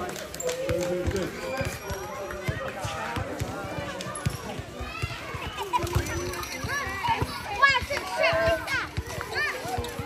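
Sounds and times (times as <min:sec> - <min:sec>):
crowd talking and shouting: 0:00.0 - 0:10.0.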